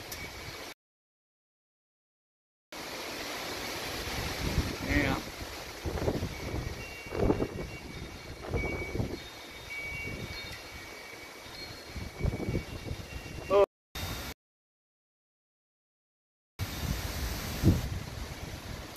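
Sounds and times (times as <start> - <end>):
storm wind gusting: 3.9 - 9.2, 12.0 - 13.5, 16.6 - 18.9
wind buffeting microphone: 4.0 - 10.6, 11.9 - 13.5, 16.6 - 18.9
faint high ringing tones: 6.2 - 14.4.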